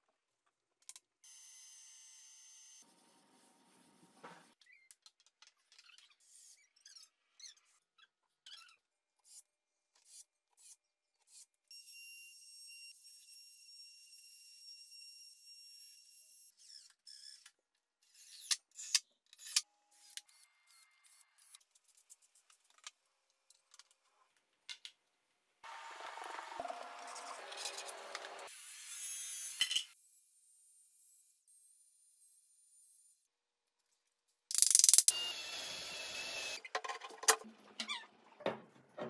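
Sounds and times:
trim router whine: 35.1 - 36.6.

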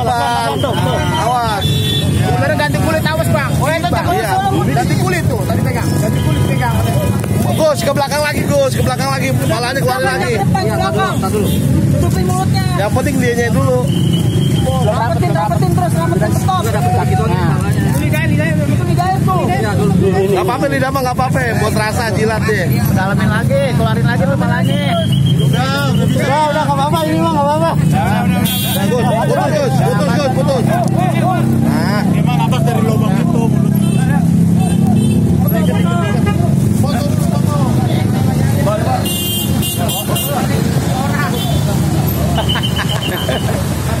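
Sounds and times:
men talking: 0.0 - 44.0
street traffic hum: 0.0 - 44.0.

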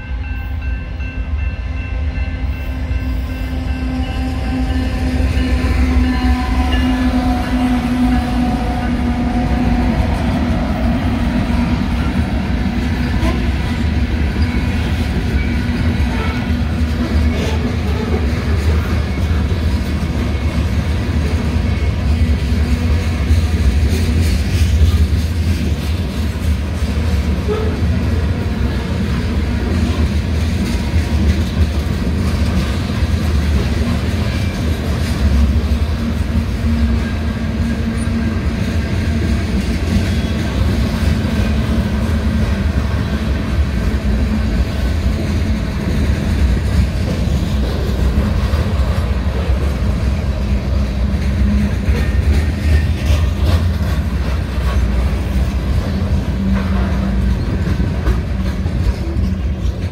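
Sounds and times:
freight train wheels rumbling on rails: 0.0 - 59.9.

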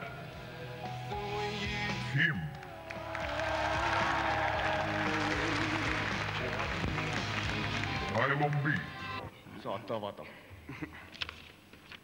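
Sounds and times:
music: 0.0 - 9.3
audience applause: 2.6 - 8.9.

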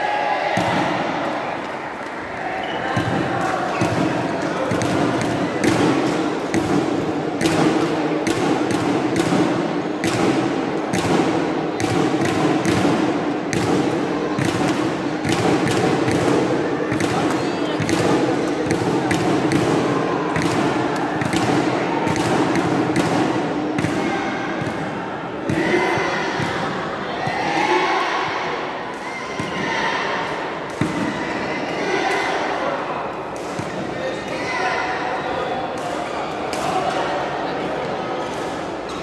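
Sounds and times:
sports hall din: 0.0 - 39.0
rackets hitting shuttlecocks: 0.6 - 24.0, 33.2 - 34.4.

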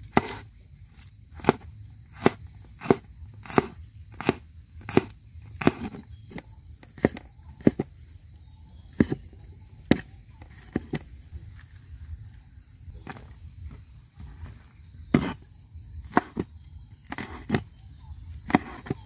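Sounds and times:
cleaver chopping on wooden board: 0.0 - 0.5, 1.4 - 7.9, 8.9 - 11.1, 15.1 - 15.4, 16.0 - 16.5, 17.1 - 17.7, 18.4 - 19.0
high insect drone: 0.0 - 19.0.

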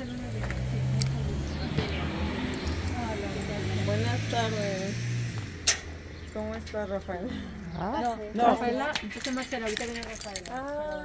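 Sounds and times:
people talking: 0.0 - 5.0, 6.3 - 11.0
light metallic clinks: 7.9 - 11.0.

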